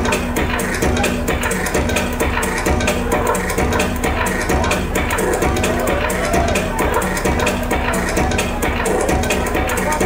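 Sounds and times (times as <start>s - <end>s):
loud techno music: 0.0s - 10.0s.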